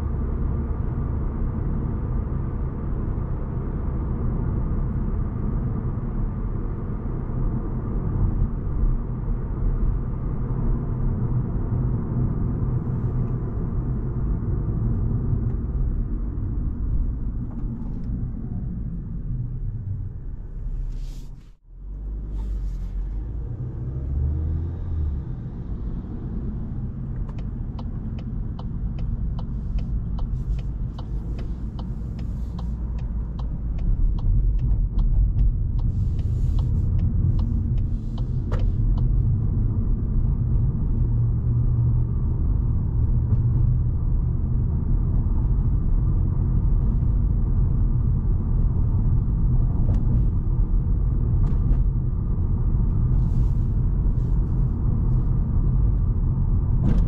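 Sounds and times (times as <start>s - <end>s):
road and engine rumble: 0.0s - 57.0s.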